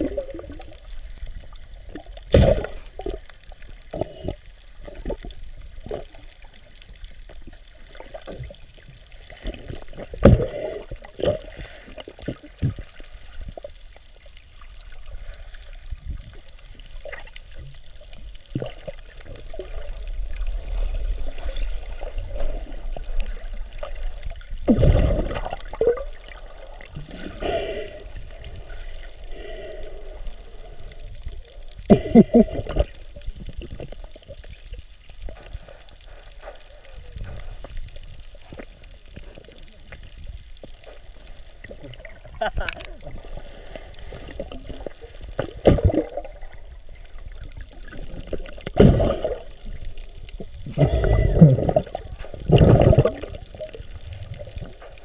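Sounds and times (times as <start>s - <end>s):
underwater water sloshing: 0.0s - 55.0s
knocks and splashes: 2.3s - 3.2s, 45.4s - 46.3s.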